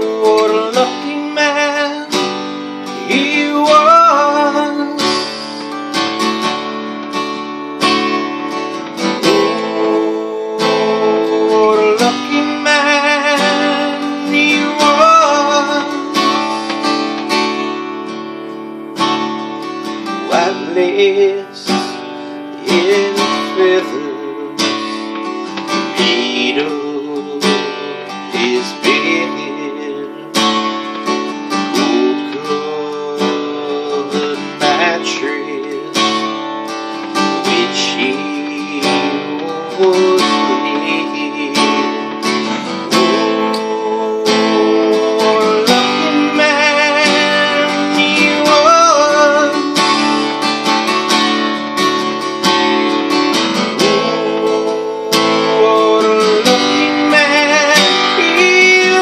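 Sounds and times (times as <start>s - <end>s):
acoustic guitar strummed: 0.0s - 59.0s
man singing with vibrato: 0.0s - 59.0s.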